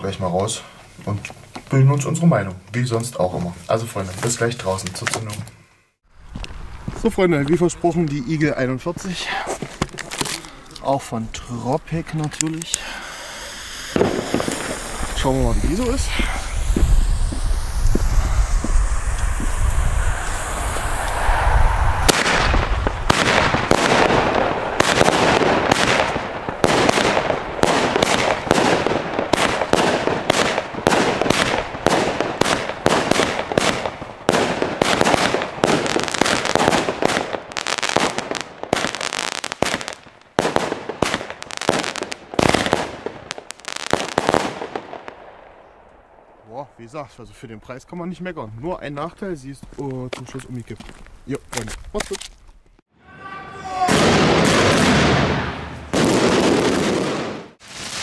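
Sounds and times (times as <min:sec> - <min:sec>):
firework shell bursts: 0:13.4 - 0:44.7
firework launch bangs: 0:13.6 - 0:45.2, 0:53.8 - 0:58.0.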